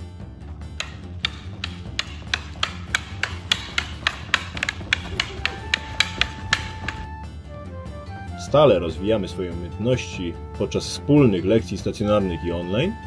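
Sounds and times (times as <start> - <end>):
wooden sticks clacking together: 0.8 - 7.1.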